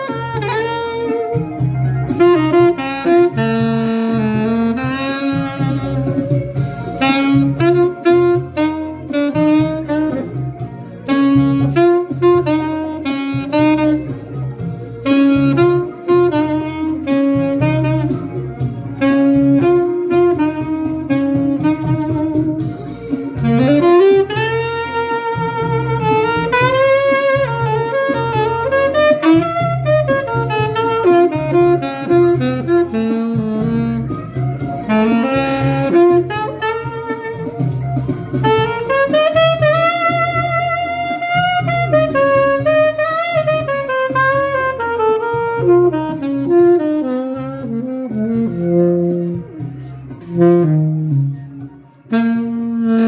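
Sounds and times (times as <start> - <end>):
backing track with bass line: 0.0 - 53.0
saxophone melody: 0.0 - 53.0.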